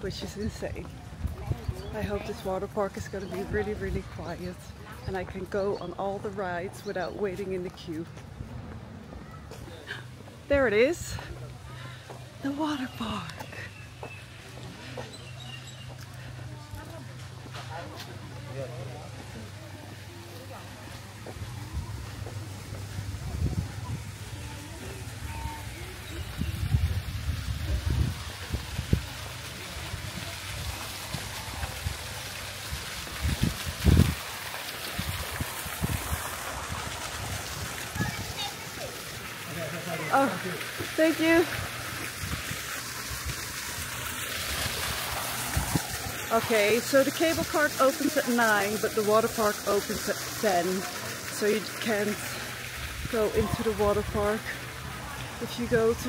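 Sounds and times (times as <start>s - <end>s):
background crowd voices: 0.0s - 32.3s, 37.0s - 42.1s
splashing water: 0.0s - 56.0s.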